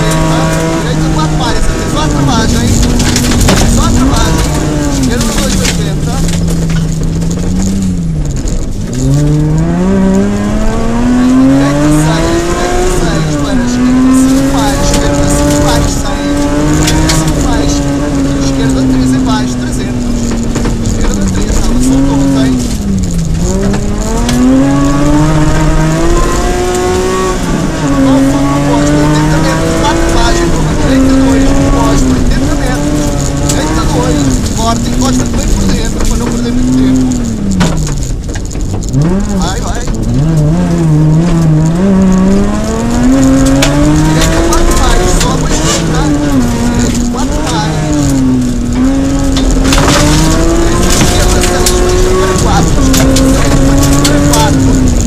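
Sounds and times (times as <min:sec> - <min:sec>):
rally car engine revving: 0:00.0 - 0:55.0
tyres and stones on gravel: 0:00.0 - 0:55.0.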